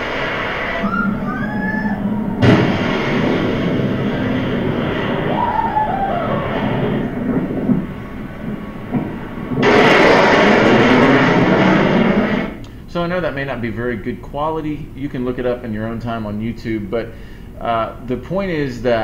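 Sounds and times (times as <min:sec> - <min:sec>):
sonic boom: 0:00.0 - 0:12.6
jet noise rushing: 0:00.0 - 0:13.1.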